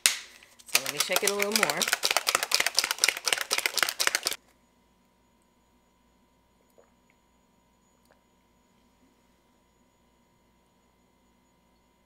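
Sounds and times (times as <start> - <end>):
shaker ball rattling in bottle: 0.6 - 4.4.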